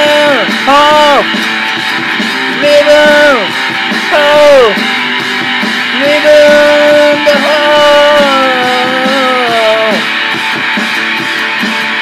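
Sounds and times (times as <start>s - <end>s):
electric guitar lead note: 0.0s - 12.0s
rock beat: 0.0s - 12.0s.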